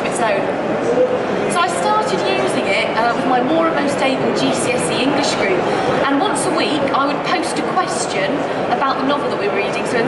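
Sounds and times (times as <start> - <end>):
woman talking: 0.0 - 0.5, 1.5 - 10.0
busy hall background noise: 0.0 - 10.0.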